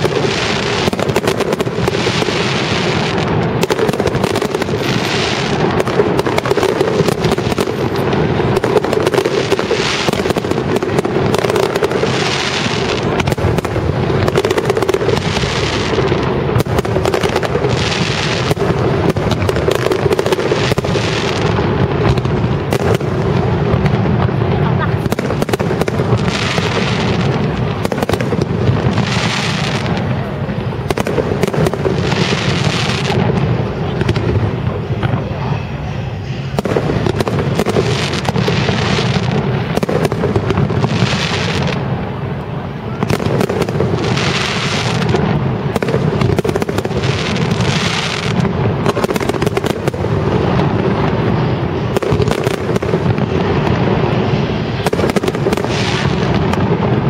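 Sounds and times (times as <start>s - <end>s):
crackling hiss of firework stars: 0.0s - 57.0s
firework shells bursting with bangs: 0.0s - 57.0s.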